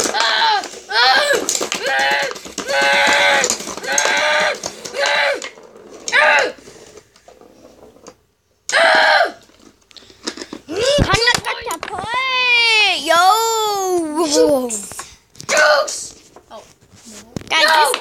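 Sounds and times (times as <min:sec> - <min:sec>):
children shouting: 0:00.0 - 0:06.6, 0:08.7 - 0:09.4.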